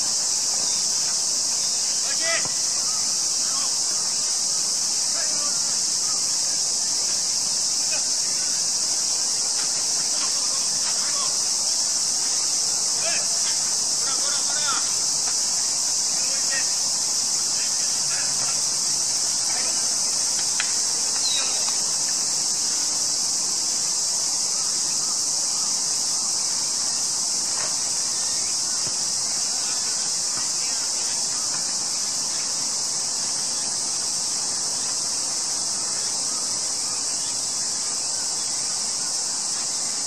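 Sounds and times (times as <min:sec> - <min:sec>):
insect chorus drone: 0:00.0 - 0:40.0.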